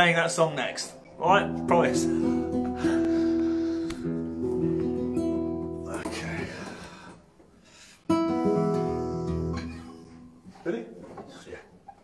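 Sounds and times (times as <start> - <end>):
classical guitar notes ringing: 0.6 - 6.0.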